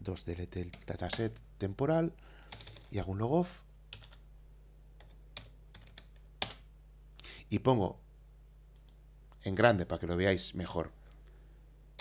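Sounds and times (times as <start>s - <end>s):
computer keyboard keystrokes: 2.5s - 2.9s, 3.9s - 4.2s, 5.0s - 6.7s.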